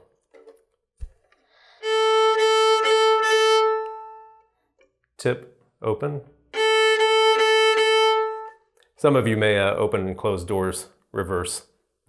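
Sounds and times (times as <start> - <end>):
violin long bowed note: 1.8 - 4.5, 6.5 - 8.6.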